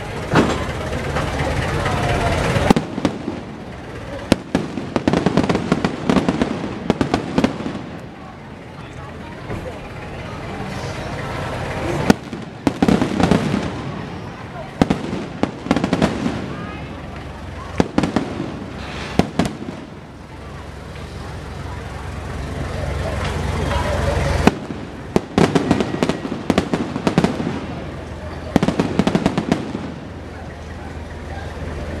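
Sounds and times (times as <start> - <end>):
crowd chatter: 0.0 - 32.0
fireworks bangs and crackles: 0.0 - 32.0.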